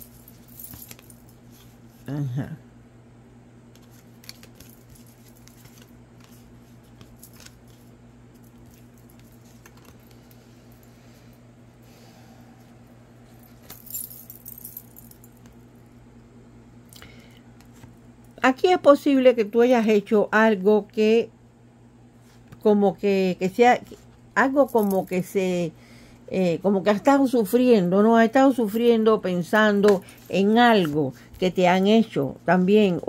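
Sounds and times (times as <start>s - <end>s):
steady low hum: 0.0s - 33.0s
cards shuffling: 0.1s - 1.8s, 3.7s - 10.4s, 29.8s - 31.5s
small metallic jingles: 13.5s - 15.4s.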